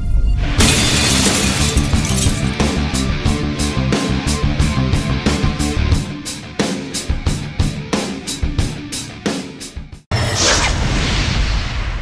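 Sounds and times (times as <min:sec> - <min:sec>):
glass shattering: 0:00.6 - 0:02.6.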